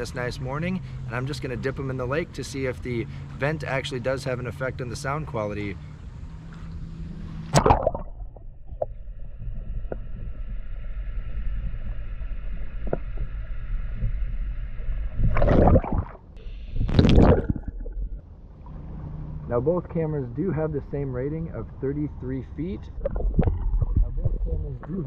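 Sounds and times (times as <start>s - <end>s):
faint steady hum: 0.0s - 25.0s
water splashing: 7.3s - 10.4s, 15.0s - 18.2s, 23.0s - 25.0s
underwater gurgling: 7.5s - 18.2s, 23.0s - 25.0s.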